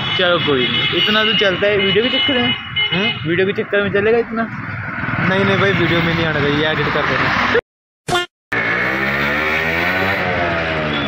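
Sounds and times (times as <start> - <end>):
road noise: 0.0 - 7.6, 8.5 - 11.0
wind: 0.0 - 7.6, 8.6 - 11.0.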